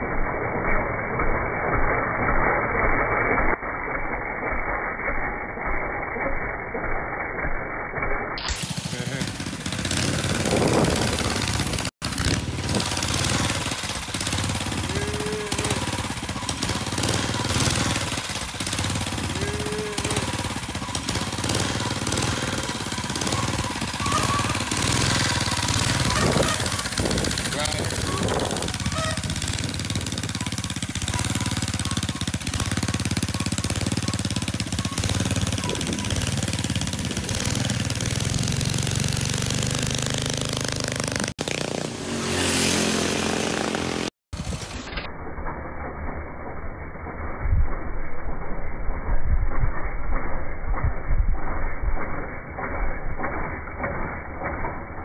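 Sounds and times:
small engine running rattly: 0:00.0 - 0:55.0.

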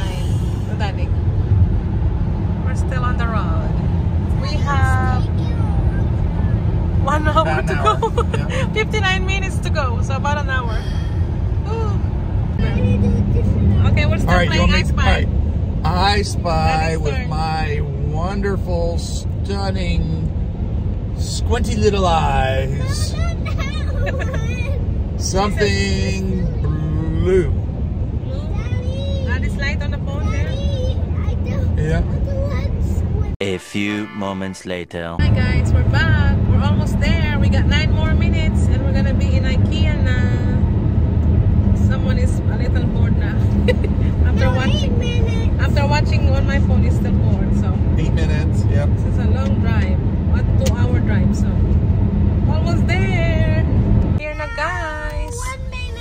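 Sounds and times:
road and engine rumble in car: 0:00.0 - 0:34.0, 0:34.8 - 0:56.0
background music: 0:33.4 - 0:34.8
high-pitched voice speaking: 0:33.4 - 0:35.2.

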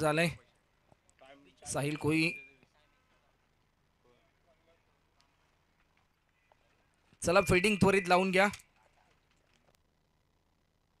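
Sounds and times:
faint clicks: 0:05.1 - 0:07.2.

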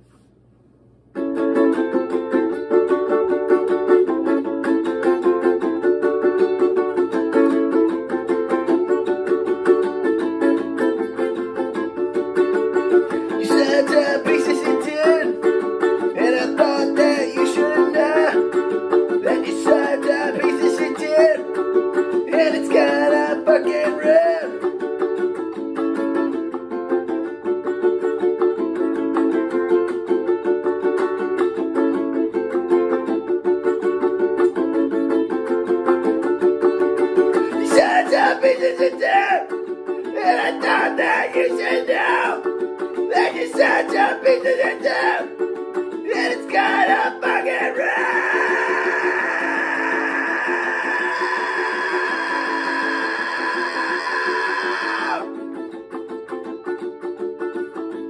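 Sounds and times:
ukulele strumming: 0:01.0 - 0:58.0
man's voice: 0:13.3 - 0:15.4, 0:16.2 - 0:18.4, 0:19.2 - 0:21.4, 0:22.3 - 0:24.6, 0:37.5 - 0:39.5, 0:40.1 - 0:42.5, 0:43.1 - 0:45.3, 0:46.1 - 0:55.3.

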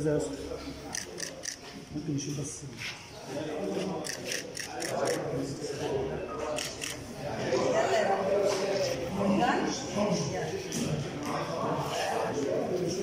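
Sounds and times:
indistinct talking in a hall: 0:00.0 - 0:13.0.

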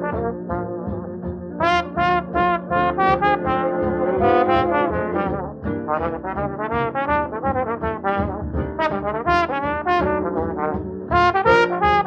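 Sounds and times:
jazz brass section held chords: 0:00.0 - 0:12.0.

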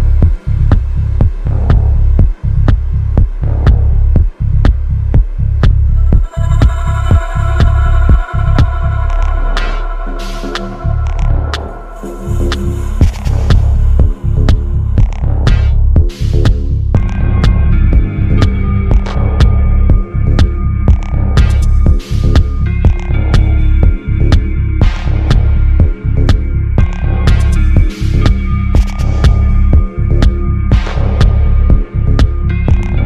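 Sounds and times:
kick drum: 0:00.0 - 0:08.8, 0:13.0 - 0:33.0
deep throbbing bass: 0:00.0 - 0:33.0
sustained synth chords: 0:05.0 - 0:24.7.

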